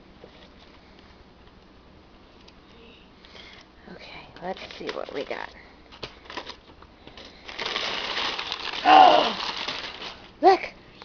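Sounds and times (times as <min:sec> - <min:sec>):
packing paper rustling and crinkling: 0:04.4 - 0:10.7
person saying oh: 0:08.8 - 0:09.4.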